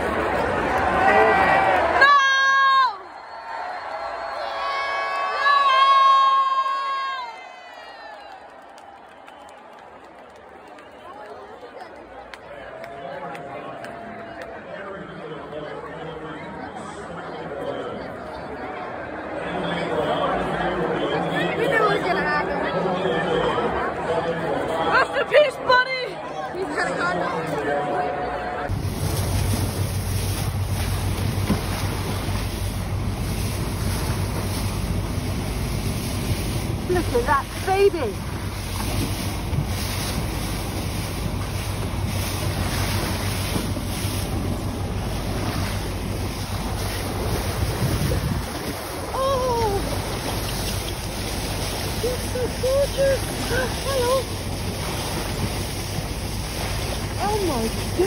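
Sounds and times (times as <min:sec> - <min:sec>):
stadium crowd chatter: 0:00.0 - 0:28.8, 0:36.8 - 0:58.0
low hum: 0:28.3 - 0:58.0
water rushing along boat hull: 0:28.6 - 0:58.0
wind buffeting microphone: 0:28.7 - 0:58.0.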